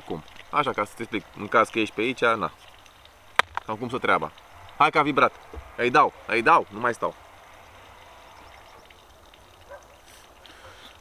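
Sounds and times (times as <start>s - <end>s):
soft hiss: 0.0s - 11.0s.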